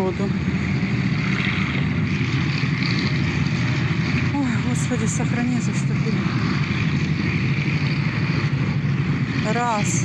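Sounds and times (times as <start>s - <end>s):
tanks driving past: 0.0s - 10.0s.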